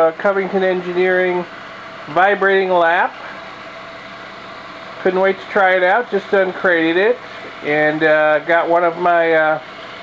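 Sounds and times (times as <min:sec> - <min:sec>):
vibrating lap motor humming: 0:00.0 - 0:10.0.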